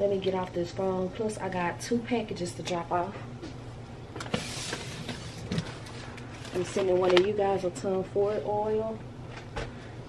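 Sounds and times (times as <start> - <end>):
low room hum: 0.0 - 10.0
plastic package rustling: 4.3 - 7.4.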